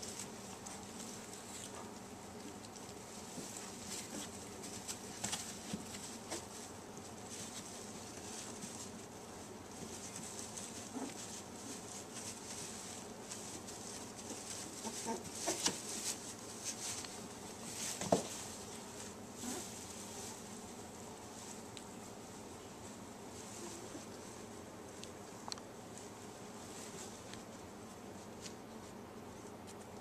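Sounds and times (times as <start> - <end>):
faint steady hiss: 0.0 - 30.0
puppies scuffling on bedding: 0.0 - 30.0
puppy whimpering: 14.8 - 15.7.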